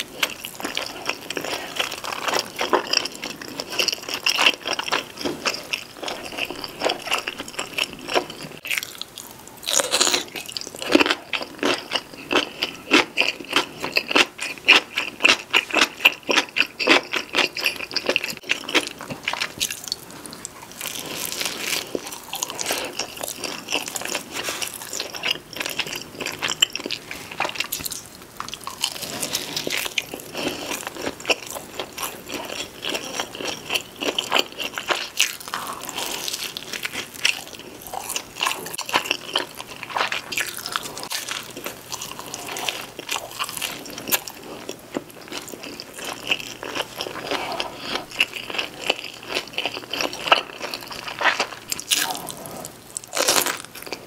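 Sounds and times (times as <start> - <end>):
soft wet chewing: 0.1 - 54.0.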